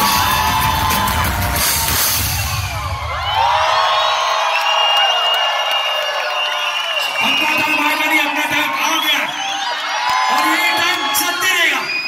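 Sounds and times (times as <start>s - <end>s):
crowd cheering and whooping: 0.0s - 12.0s.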